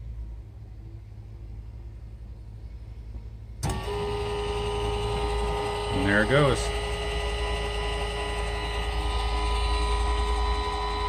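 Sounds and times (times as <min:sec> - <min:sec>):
faint low background hum: 0:00.0 - 0:11.0
linear actuator motor whine: 0:03.6 - 0:11.0.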